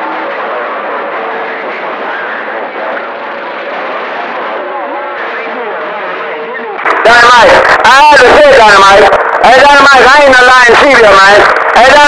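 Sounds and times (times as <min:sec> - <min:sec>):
faint garbled voices: 0:00.0 - 0:12.0
radio static hiss: 0:00.0 - 0:12.0.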